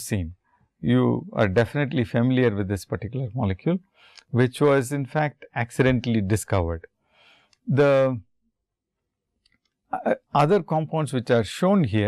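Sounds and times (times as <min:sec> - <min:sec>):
man lecturing: 0:00.0 - 0:06.9, 0:07.7 - 0:08.2, 0:10.0 - 0:12.0.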